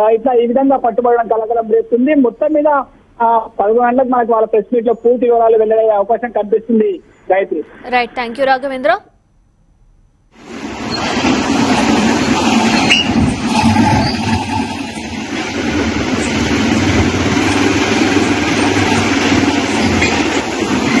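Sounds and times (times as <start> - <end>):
heavy vehicle engine rumbling: 10.4 - 21.0.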